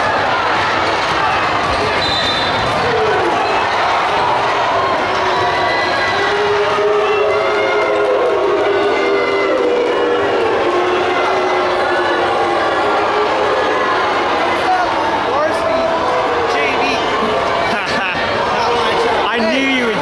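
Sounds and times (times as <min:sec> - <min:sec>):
crowd voices in gym: 0:00.0 - 0:20.0.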